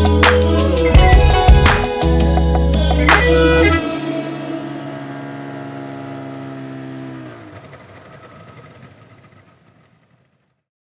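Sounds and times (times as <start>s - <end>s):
distorted guitar and bass chord: 0.0s - 6.1s.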